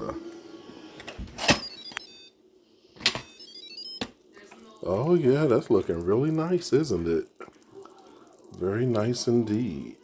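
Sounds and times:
electronic chimes: 0:03.1 - 0:04.2.

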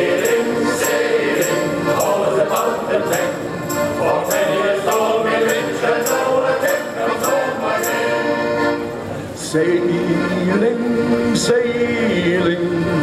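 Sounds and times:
tambourine jingling: 0:00.0 - 0:08.7
male choir singing in harmony: 0:00.0 - 0:08.8, 0:09.4 - 0:13.0.

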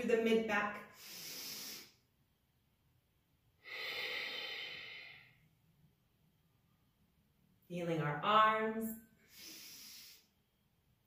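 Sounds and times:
woman breathing: 0:00.9 - 0:02.1, 0:03.6 - 0:05.6, 0:09.2 - 0:10.5.

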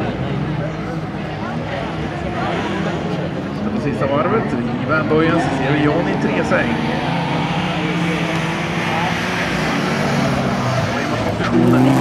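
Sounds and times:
race car engines running hard: 0:00.0 - 0:12.0.

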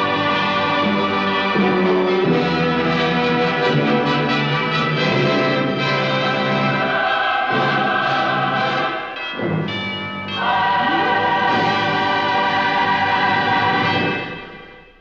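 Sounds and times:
choir singing: 0:00.0 - 0:15.0
orchestral music: 0:00.0 - 0:15.0.

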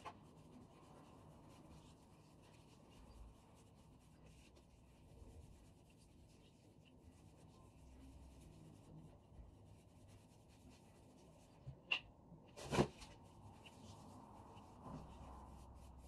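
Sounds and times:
fingers rubbing wet hair: 0:00.0 - 0:11.6, 0:13.3 - 0:16.0.

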